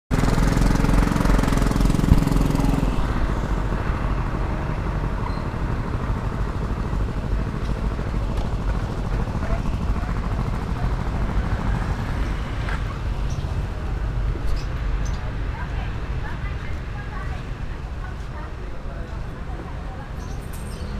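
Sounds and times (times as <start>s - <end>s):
scooter engine running: 0.1s - 14.3s
road and wind rumble: 0.1s - 20.9s.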